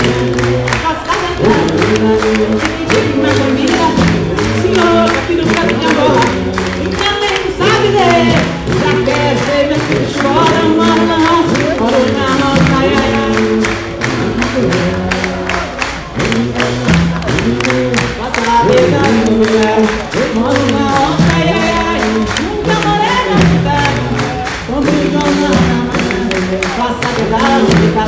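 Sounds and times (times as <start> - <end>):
crowd voices: 0.0 - 28.0
drums: 0.0 - 28.0
live band playing pop music: 0.0 - 28.0
people singing: 0.0 - 28.0.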